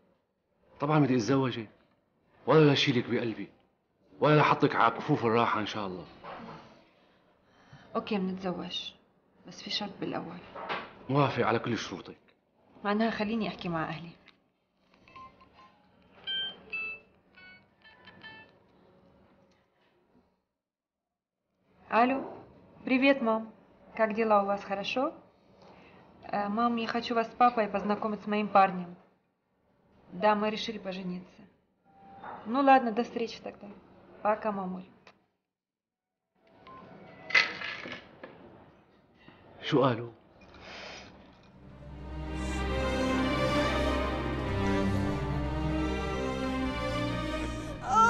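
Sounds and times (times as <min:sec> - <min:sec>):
phone keypad beeps: 0:15.1 - 0:18.6.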